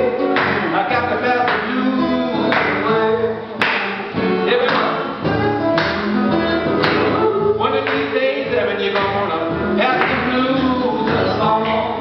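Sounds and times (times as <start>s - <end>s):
acoustic guitar strummed: 0.0s - 12.0s
man singing: 0.0s - 12.0s.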